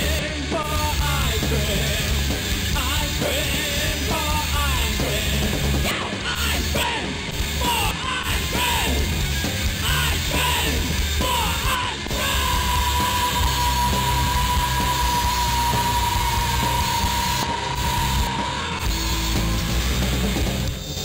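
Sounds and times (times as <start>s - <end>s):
yelled vocals: 0.0s - 20.7s
heavy rock music: 0.0s - 21.0s.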